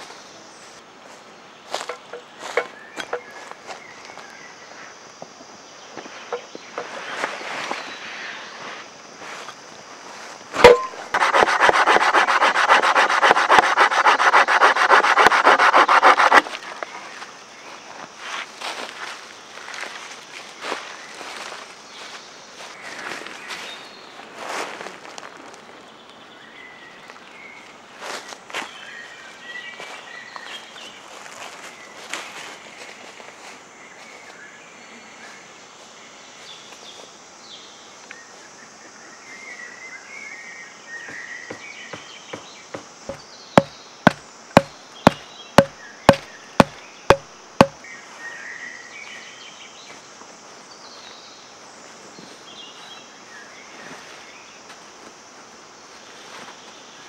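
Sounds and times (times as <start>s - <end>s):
footsteps on dry leaves: 1.1s - 4.8s, 6.0s - 25.5s
stake being hammered: 1.8s - 3.3s, 10.6s - 16.4s, 41.5s - 47.8s.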